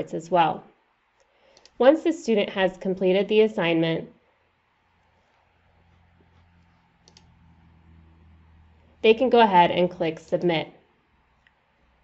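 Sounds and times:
faint low hum: 0.0s - 12.0s
computer mouse clicks: 1.2s - 1.8s, 5.0s - 7.8s.

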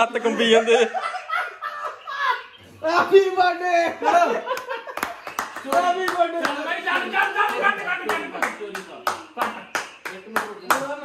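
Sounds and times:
group clapping in rhythm: 4.5s - 11.0s.

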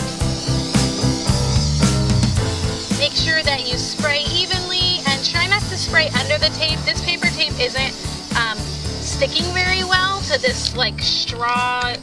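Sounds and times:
guitar over a steady beat: 0.0s - 12.0s.

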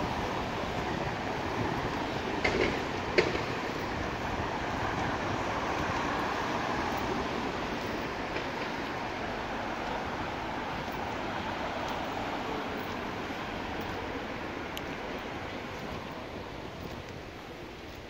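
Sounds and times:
road traffic passing: 0.0s - 18.0s.

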